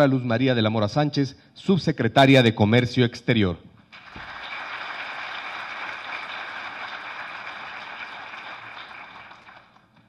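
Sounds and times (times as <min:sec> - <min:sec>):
audience applause: 0:04.0 - 0:09.8.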